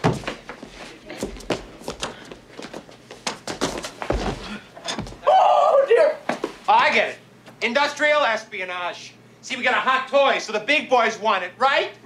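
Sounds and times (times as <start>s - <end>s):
knocks and thuds of scuffle: 0.0s - 0.6s, 3.2s - 5.2s.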